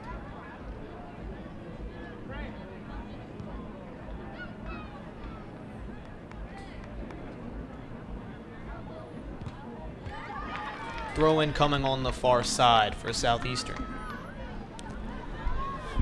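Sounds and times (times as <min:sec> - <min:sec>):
distant voices shouting: 0:13.6 - 0:16.0.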